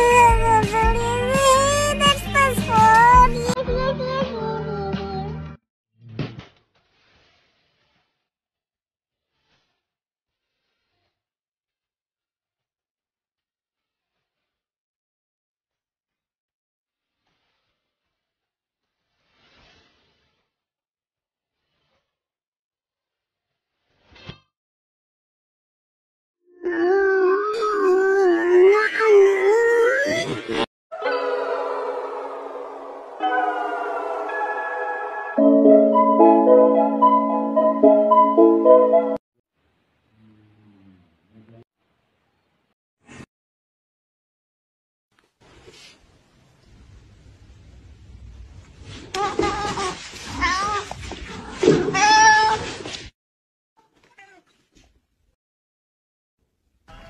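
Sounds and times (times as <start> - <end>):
long wavering howl: 30.9 - 35.6
cat meowing: 49.1 - 51.0, 51.6 - 52.7, 53.8 - 54.6.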